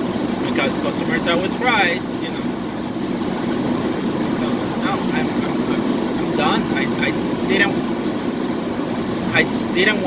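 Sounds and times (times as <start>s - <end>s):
car engine and tyres drone: 0.0s - 10.0s.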